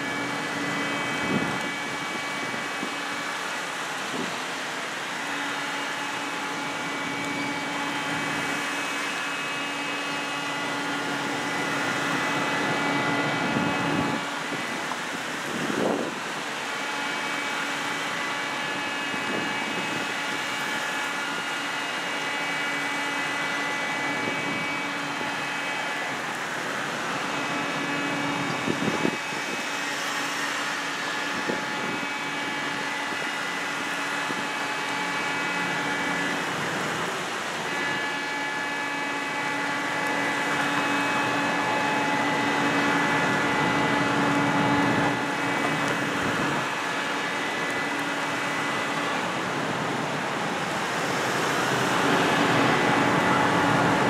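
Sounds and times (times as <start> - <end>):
steady engine hum: 0.0 - 54.0.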